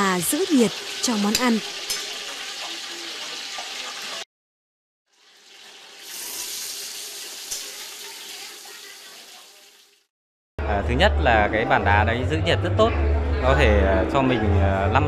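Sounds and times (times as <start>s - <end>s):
meat sizzling in frying pan: 0.0s - 4.2s, 5.1s - 10.1s.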